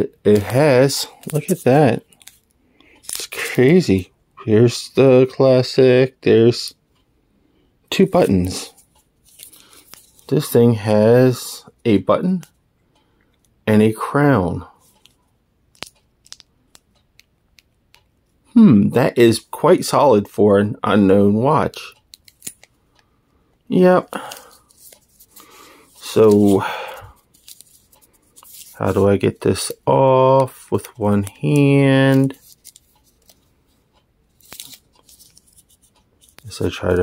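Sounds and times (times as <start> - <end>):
smartwatch handling clicks and rustles: 0.3 - 3.4, 8.1 - 10.6, 14.8 - 18.0, 21.9 - 23.0, 24.1 - 26.6, 27.2 - 33.5, 34.3 - 37.0.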